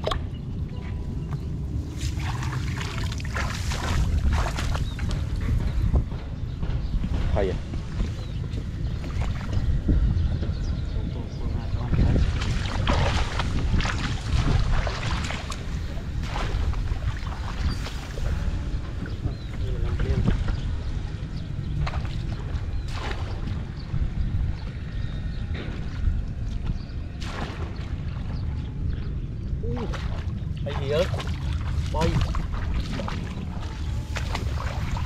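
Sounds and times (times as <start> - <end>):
wind buffeting microphone: 0.0 - 35.0
hands sloshing in muddy water: 1.8 - 5.2, 12.0 - 18.7, 29.8 - 35.0.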